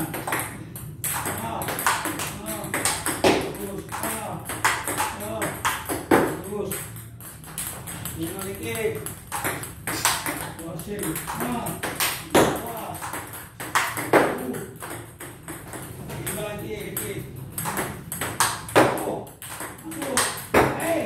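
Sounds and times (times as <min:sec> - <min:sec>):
ping pong ball clicks: 0:00.0 - 0:20.9.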